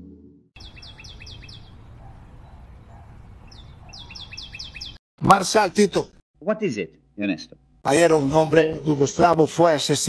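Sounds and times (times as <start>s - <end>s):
songbird chirping: 0.6s - 5.0s.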